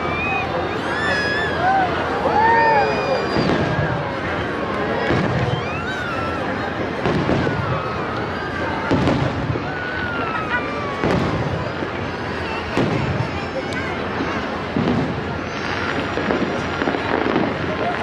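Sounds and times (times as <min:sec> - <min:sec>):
fireworks bursting: 0:00.0 - 0:18.0.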